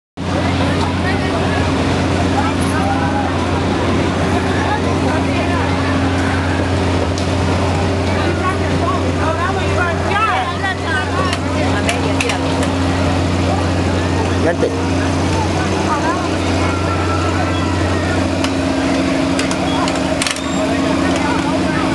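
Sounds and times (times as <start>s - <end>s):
crowd chattering: 0.2s - 21.9s
low machine hum: 0.2s - 21.9s.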